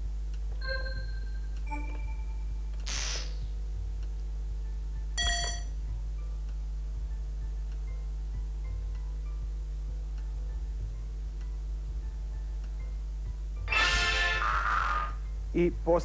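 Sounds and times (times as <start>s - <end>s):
steady low hum: 0.0s - 16.0s.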